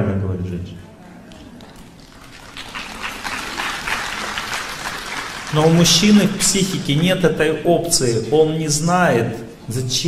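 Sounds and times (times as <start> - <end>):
audience applauding: 1.3 - 7.0.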